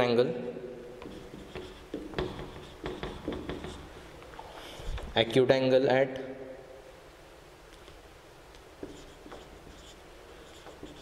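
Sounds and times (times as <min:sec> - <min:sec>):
marker pen writing on whiteboard: 0:00.9 - 0:04.1, 0:08.6 - 0:11.0.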